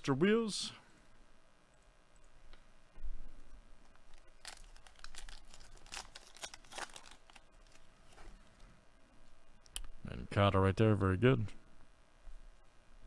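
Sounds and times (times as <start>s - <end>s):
wrapper tearing and crinkling: 4.1s - 7.9s.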